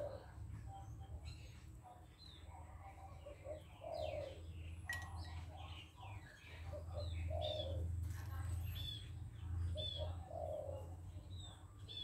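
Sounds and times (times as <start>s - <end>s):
dove-like coos: 0.0s - 0.7s, 2.6s - 4.6s, 6.4s - 8.0s, 9.6s - 11.2s
songbirds chirping: 0.0s - 12.0s.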